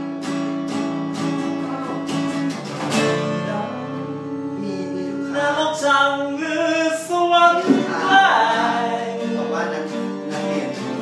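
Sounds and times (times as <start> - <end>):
acoustic guitar: 0.0 - 11.0
person singing: 1.4 - 2.3, 3.0 - 11.0.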